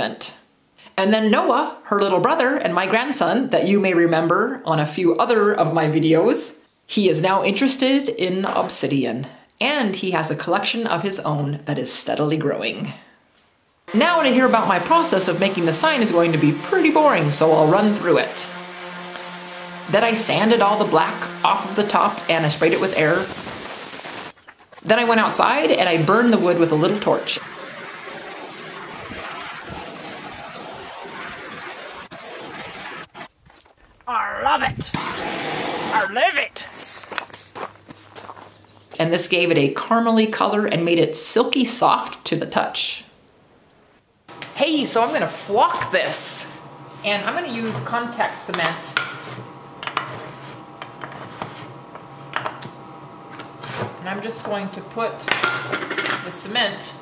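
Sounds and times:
propane torch flame hissing: 0:13.9 - 0:24.4, 0:25.1 - 0:33.3, 0:34.9 - 0:36.1.

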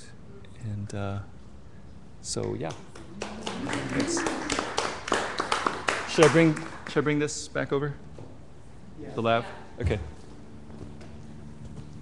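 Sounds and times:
audience clapping: 0:02.7 - 0:07.3.

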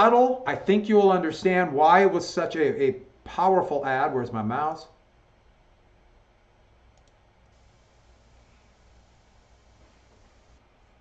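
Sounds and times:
computer mouse clicks: 0:07.0 - 0:07.6.

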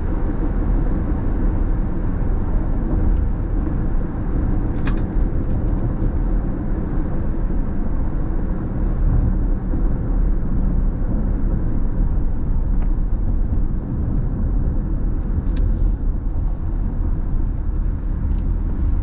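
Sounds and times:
car road noise on wet pavement: 0:00.0 - 0:19.0.

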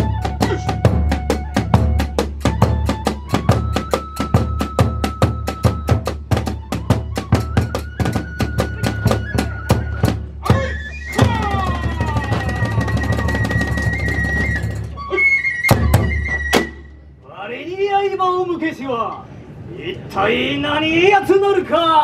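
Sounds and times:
taiko drum beating: 0:00.0 - 0:14.9
bamboo flute note: 0:00.0 - 0:17.0.

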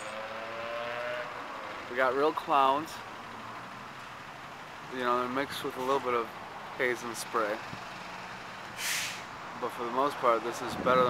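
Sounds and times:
traffic noise: 0:00.0 - 0:11.0.

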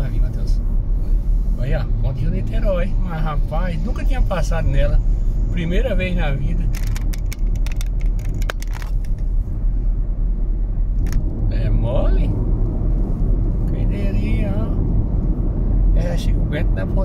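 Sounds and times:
voices in car: 0:00.0 - 0:07.2, 0:11.1 - 0:17.0
tyre and engine rumble: 0:00.0 - 0:17.0.

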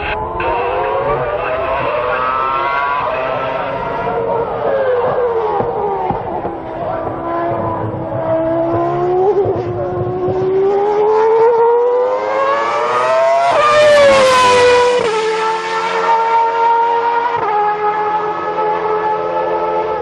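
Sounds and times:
racing car engine at high revs: 0:00.0 - 0:20.0.

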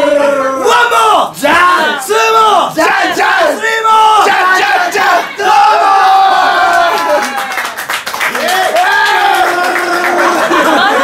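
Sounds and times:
men singing and shouting: 0:00.0 - 0:06.4.

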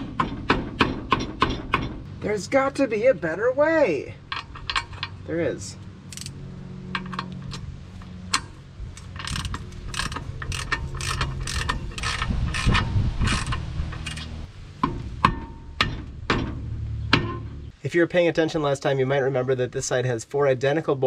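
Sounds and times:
socket ratchet clicking: 0:06.1 - 0:06.4, 0:08.3 - 0:14.3.

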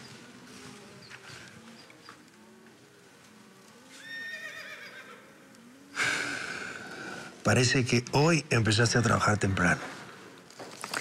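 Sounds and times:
horse whinnying: 0:03.9 - 0:05.3.

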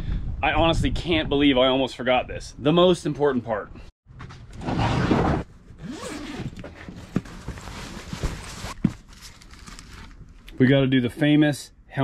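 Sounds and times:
zipper on a bag pulled open: 0:04.6 - 0:06.6
bag rustling: 0:05.8 - 0:10.2.

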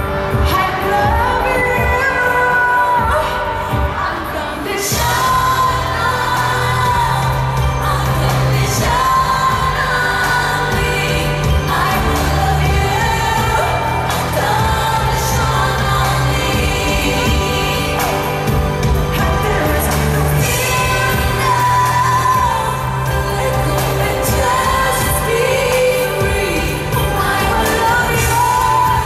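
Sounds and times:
live pop band: 0:00.0 - 0:29.0
woman singing into microphone: 0:00.0 - 0:29.0
deep bass: 0:05.0 - 0:29.0.

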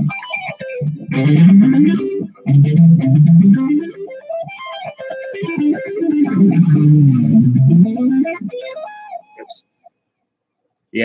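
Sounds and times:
electric guitar through an amp: 0:00.0 - 0:09.4.

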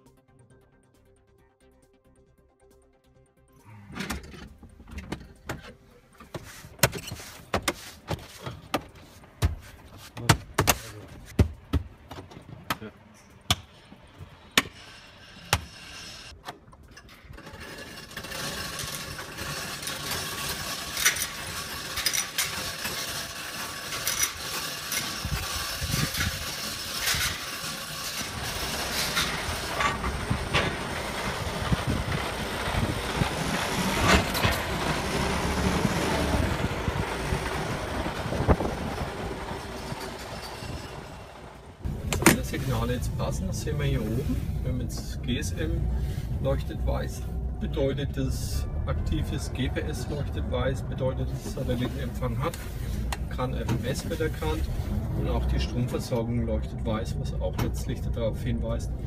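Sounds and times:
workshop and vehicle noise: 0:03.6 - 0:59.0.

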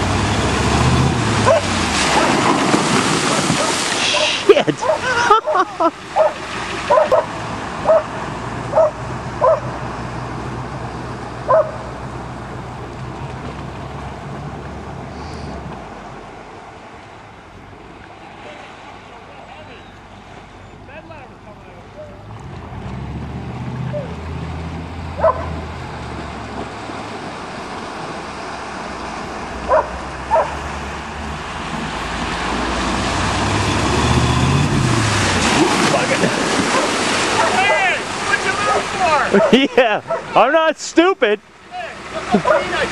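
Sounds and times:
dog barking: 0:01.4 - 0:02.4, 0:03.3 - 0:05.6, 0:06.2 - 0:09.8, 0:11.5 - 0:11.9, 0:25.2 - 0:25.6, 0:29.7 - 0:30.6, 0:36.7 - 0:37.8, 0:39.3 - 0:40.4, 0:42.4 - 0:42.7.

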